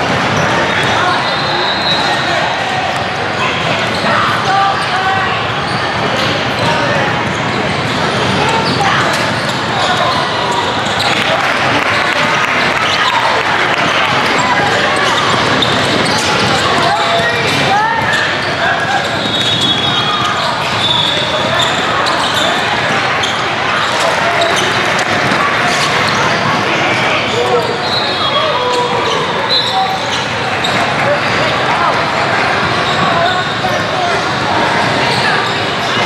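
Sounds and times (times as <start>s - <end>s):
babble of many voices: 0.0s - 36.0s
short high squeaks: 18.1s - 25.0s.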